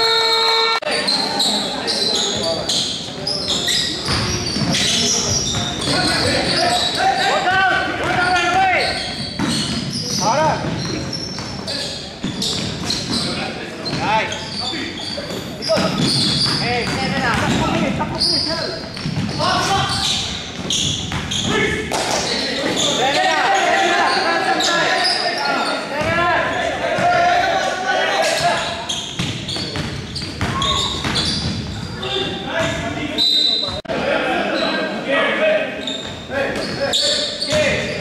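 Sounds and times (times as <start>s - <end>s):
voices calling out: 0.0s - 38.0s.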